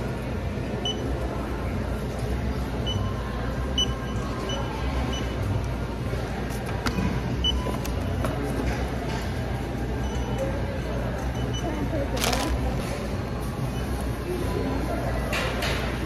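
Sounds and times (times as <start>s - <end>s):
low store hum: 0.0s - 16.0s
barcode scanner beeps: 0.8s - 1.2s, 2.8s - 5.4s.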